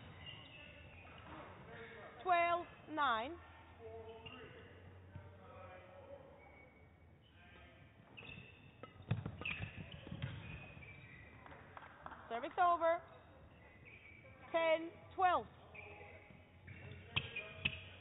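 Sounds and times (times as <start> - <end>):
shoe squeaks on court floor: 0.0 - 2.0, 4.0 - 4.8, 6.2 - 11.6, 13.0 - 14.6, 15.4 - 18.0.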